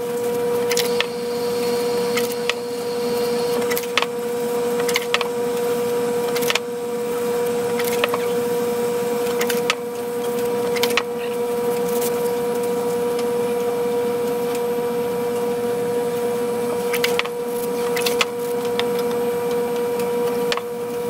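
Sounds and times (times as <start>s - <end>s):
steady machine hum: 0.0s - 21.0s.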